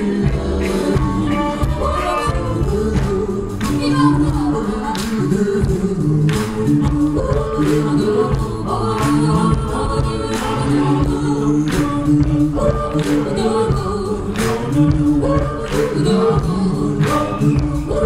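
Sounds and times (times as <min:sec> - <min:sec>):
live band playing: 0:00.0 - 0:18.0
voices singing harmonies: 0:00.0 - 0:18.0.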